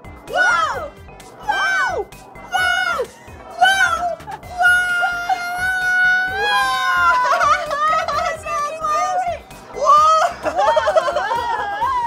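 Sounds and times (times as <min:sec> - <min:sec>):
excited exclamations: 0:00.3 - 0:12.0
person shouting whoa: 0:00.3 - 0:12.0
people laughing: 0:06.5 - 0:09.2, 0:09.8 - 0:12.0.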